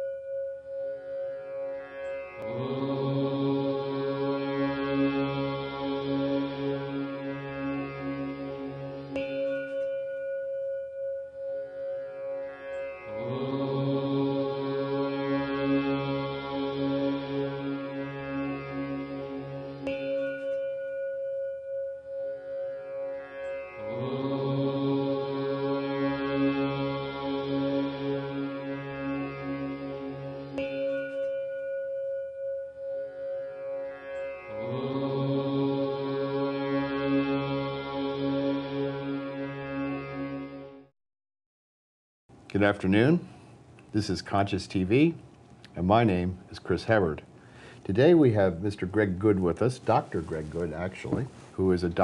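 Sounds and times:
singing bowl ringing: 0.0 - 2.6, 4.8 - 14.0, 15.1 - 35.8
chanted om drone: 0.0 - 40.9.

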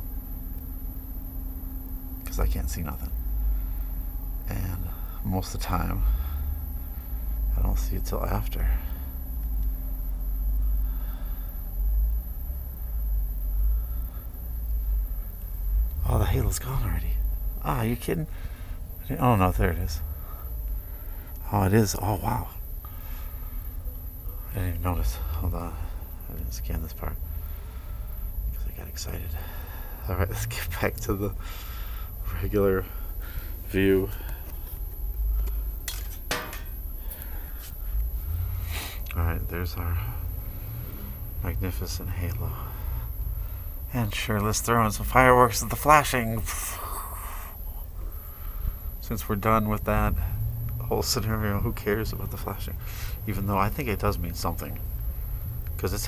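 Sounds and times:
low handling rumble: 0.0 - 56.0.

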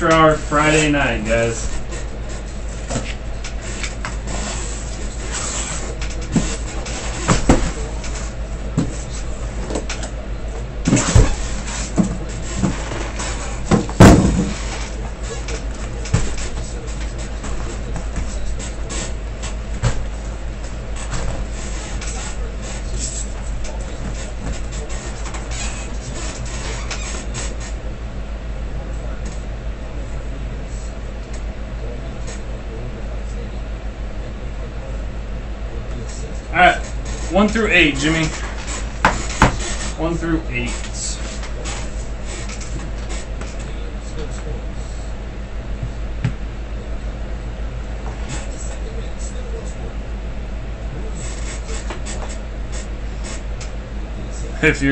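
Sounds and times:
steady low hum: 0.0 - 54.9.

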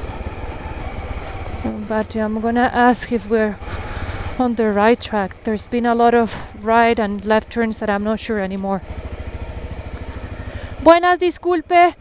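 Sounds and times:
motorcycle engine low rumble: 0.0 - 12.0.

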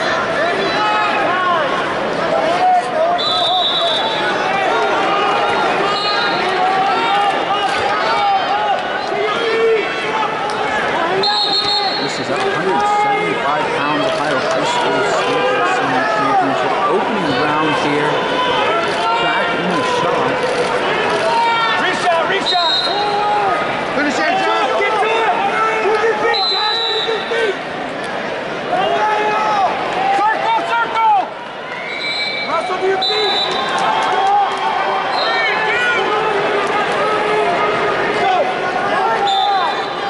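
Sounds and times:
crowd shouting and cheering: 0.0 - 40.0
whistle blasts: 3.2 - 4.2, 6.0 - 6.4, 11.2 - 12.0, 22.4 - 23.0, 26.3 - 27.3, 31.8 - 33.7, 39.2 - 40.0.

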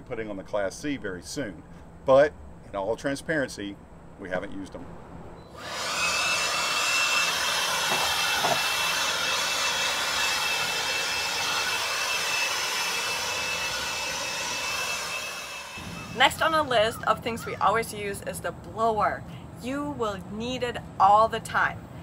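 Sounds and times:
leaf blower running: 5.5 - 16.8.

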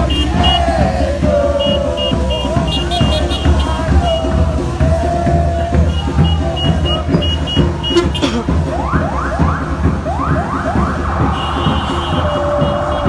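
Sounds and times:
football crowd in the street: 0.0 - 13.0
siren sweeping up in pitch: 8.7 - 11.9.

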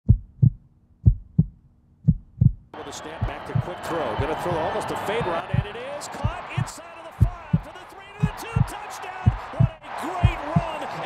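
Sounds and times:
heartbeat thumps: 0.0 - 10.8.

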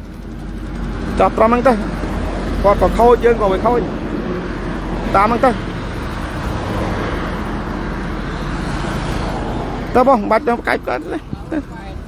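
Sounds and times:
road traffic rumble: 0.0 - 12.0
person speaking: 9.8 - 12.0.

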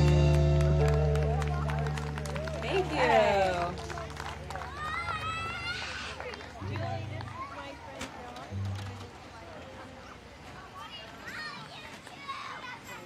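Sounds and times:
voices calling out: 0.0 - 13.0.

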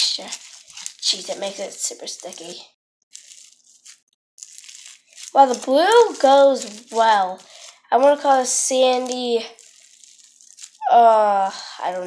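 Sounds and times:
wet slime squeezing: 0.0 - 2.5, 3.1 - 10.9.

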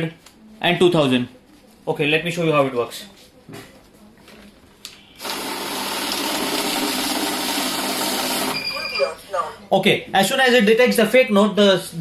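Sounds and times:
banknote counting machine rush: 5.2 - 8.8
electronic beep: 8.5 - 9.2.

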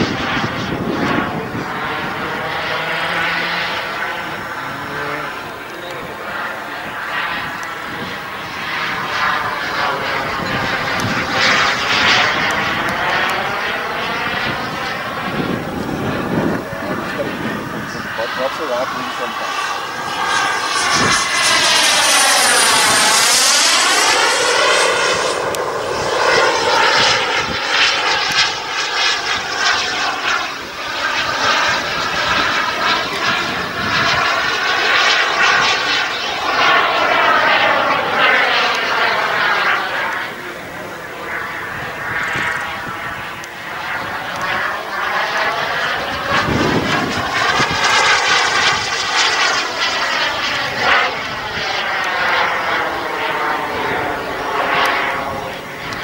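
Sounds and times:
model jet turbine flying overhead: 0.0 - 56.0.

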